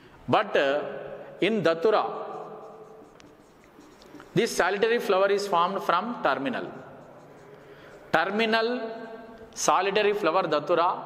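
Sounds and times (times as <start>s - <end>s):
marker writing on whiteboard: 1.6s - 9.8s.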